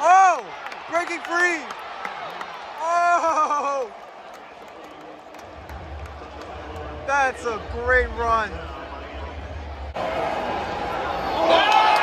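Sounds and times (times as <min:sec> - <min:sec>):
stadium crowd murmur: 0:00.0 - 0:12.0
low rumble: 0:05.4 - 0:10.1.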